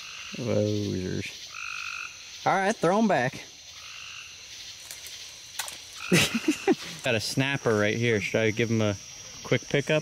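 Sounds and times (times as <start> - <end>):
frogs calling: 0.0 - 10.0
high insect trill: 0.0 - 10.0.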